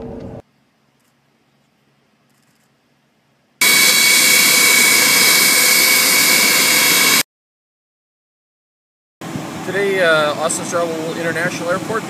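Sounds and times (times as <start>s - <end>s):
jet engines roaring with high whine: 3.6s - 7.2s, 9.2s - 12.0s.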